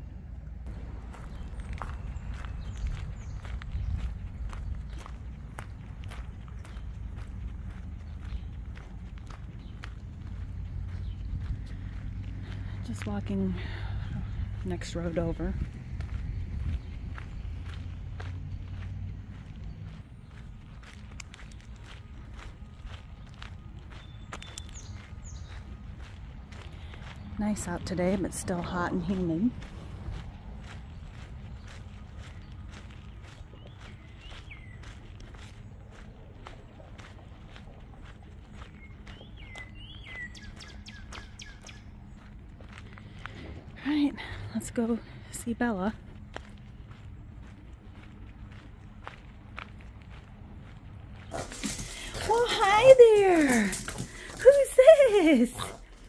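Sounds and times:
steady low rumble: 0.0s - 52.3s
footsteps crunching on gravel: 0.7s - 56.0s.

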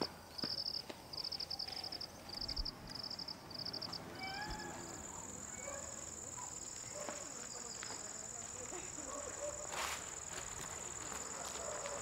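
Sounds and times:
insects chirping: 0.3s - 12.0s.

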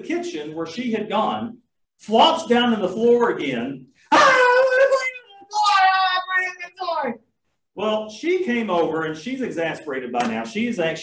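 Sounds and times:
man wailing like crying child: 4.1s - 7.1s.

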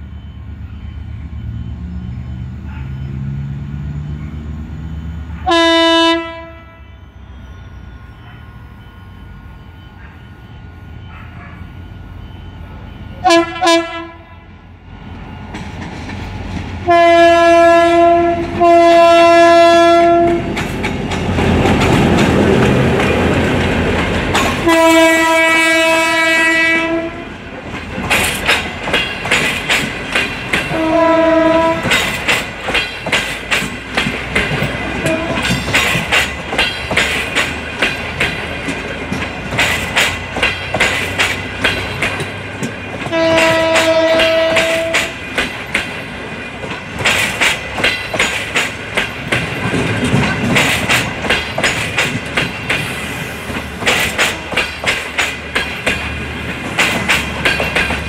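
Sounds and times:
locomotive rumble: 0.0s - 58.0s
locomotive horn blasts: 5.3s - 8.7s, 13.2s - 14.6s, 16.8s - 20.6s, 24.5s - 27.4s, 30.7s - 32.1s, 34.8s - 35.6s, 43.1s - 45.2s
train wheels clickety-clack: 15.4s - 27.0s, 27.6s - 58.0s.

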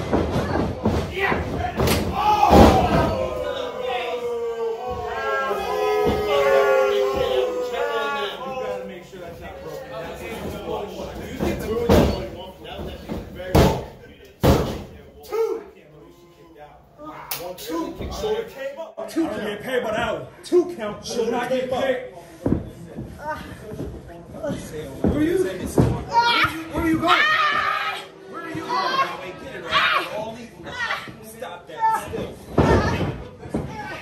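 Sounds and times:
voices: 0.2s - 34.0s
voices shouting: 1.2s - 9.0s, 26.1s - 31.1s.

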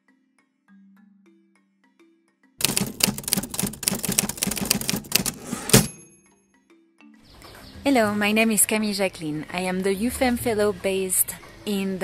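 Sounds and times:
soft mallet music: 0.0s - 2.6s, 5.9s - 8.1s
typewriter keys clattering: 2.6s - 5.9s.

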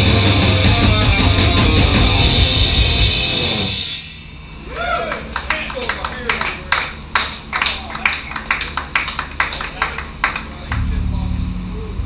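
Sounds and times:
person shouting a whoop: 4.7s - 5.2s
scattered hand claps: 5.1s - 10.9s.

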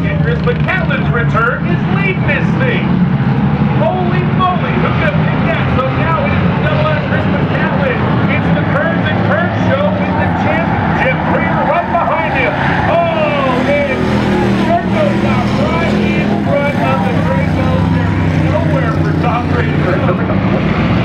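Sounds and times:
race car engines passing by: 0.0s - 21.0s.

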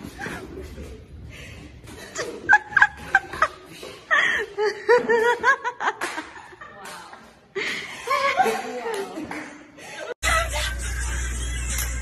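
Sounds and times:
person laughing: 10.0s - 11.2s.

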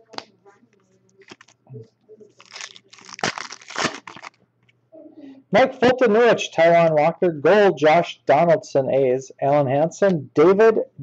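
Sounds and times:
foil pack crinkling and tearing: 1.2s - 1.6s, 2.4s - 4.4s
foil pack clicks: 2.4s - 4.4s.

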